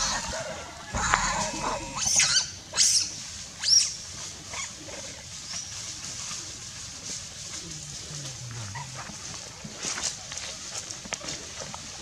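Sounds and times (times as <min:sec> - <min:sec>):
macaque high-pitched calls: 0:00.0 - 0:03.9.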